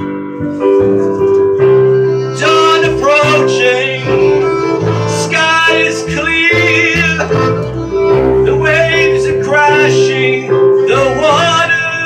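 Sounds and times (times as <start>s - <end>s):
keyboard: 0.0s - 12.0s
upright bass: 0.0s - 12.0s
violin melody: 0.4s - 12.0s.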